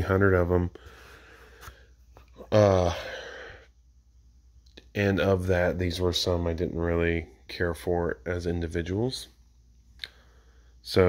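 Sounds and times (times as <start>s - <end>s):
man speaking: 0.0s - 0.8s, 2.4s - 3.4s, 4.8s - 9.4s
man sighing: 2.3s - 3.7s.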